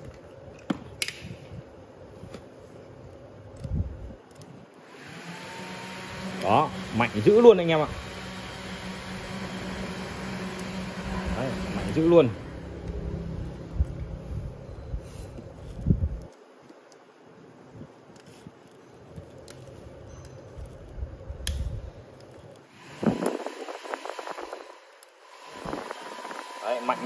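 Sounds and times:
electric fan humming: 0:00.0 - 0:18.4, 0:19.3 - 0:27.0.

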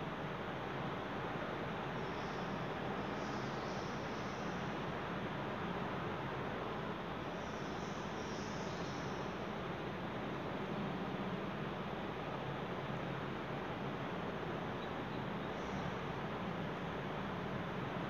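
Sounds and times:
steady hiss: 0:00.0 - 0:18.0.

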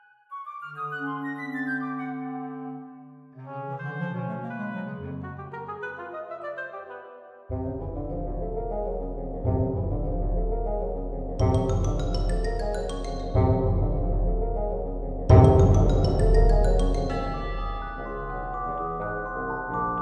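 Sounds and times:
orchestral chords: 0:11.4 - 0:20.0.

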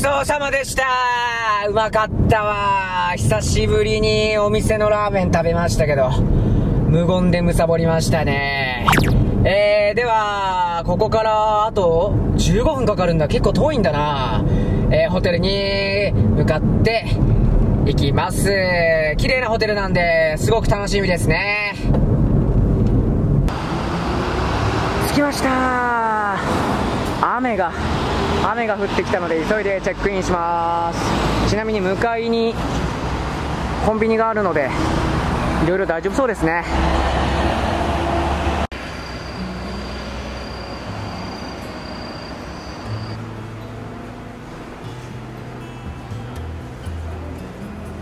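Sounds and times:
car road and engine noise: 0:01.5 - 0:48.0
quiet music with low held notes: 0:43.2 - 0:48.0.

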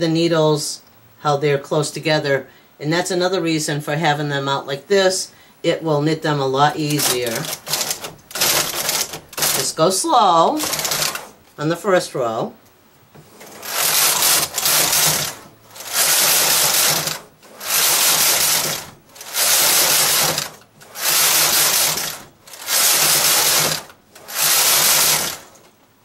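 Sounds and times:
knitting machine carriage sliding: 0:06.8 - 0:11.4, 0:13.2 - 0:25.7.

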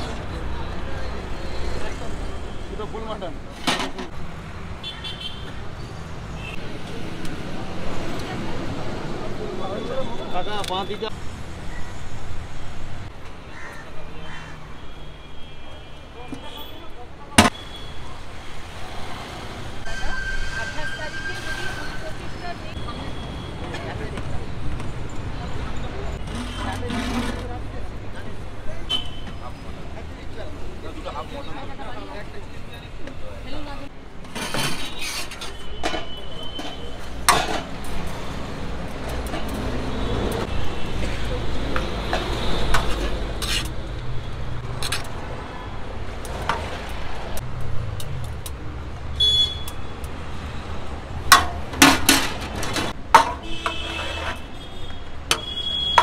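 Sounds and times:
low rumble of street noise: 0:00.0 - 0:56.0
crow cawing: 0:13.5 - 0:14.7.

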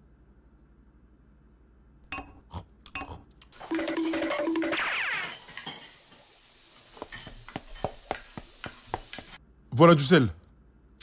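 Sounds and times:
dishes and pots clinking: 0:03.0 - 0:06.4, 0:07.0 - 0:08.2.

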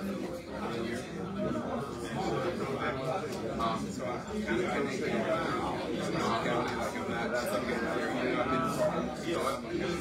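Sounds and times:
indistinct speech in large room: 0:00.0 - 0:10.0.

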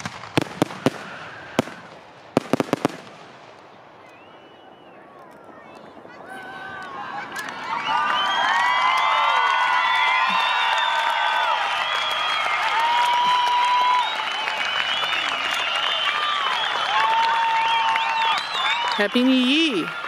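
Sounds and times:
crowd whistling: 0:00.7 - 0:01.9, 0:03.9 - 0:20.0
crowd cheering and whooping: 0:00.8 - 0:01.8, 0:04.2 - 0:20.0
applause: 0:06.8 - 0:20.0.

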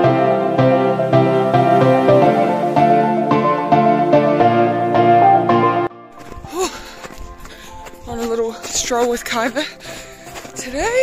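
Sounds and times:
faint music: 0:04.9 - 0:11.0
running footsteps: 0:06.1 - 0:11.0.

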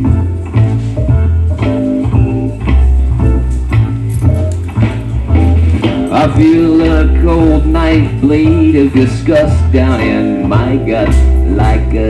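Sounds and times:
bass guitar: 0:00.0 - 0:12.0
electric guitar: 0:00.0 - 0:12.0
live band playing: 0:00.0 - 0:12.0
person singing: 0:06.1 - 0:12.0.

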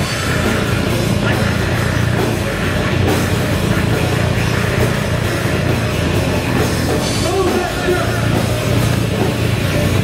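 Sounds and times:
electric bass: 0:00.0 - 0:10.0
live heavy rock band playing: 0:00.0 - 0:10.0.

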